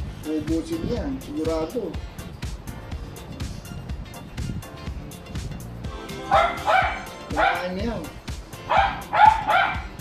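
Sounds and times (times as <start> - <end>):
background music: 0.0 - 10.0
dog yipping: 6.2 - 7.7, 8.6 - 10.0.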